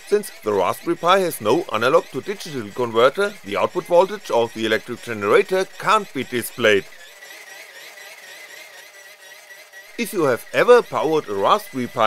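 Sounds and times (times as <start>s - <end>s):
geared motor whirring with whine: 0.0s - 12.0s.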